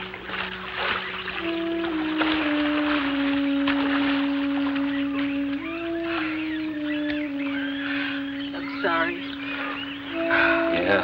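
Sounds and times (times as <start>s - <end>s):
birds chirping: 0.0s - 11.0s
low organ-like note: 0.0s - 11.0s
rapid bird trill: 4.0s - 11.0s.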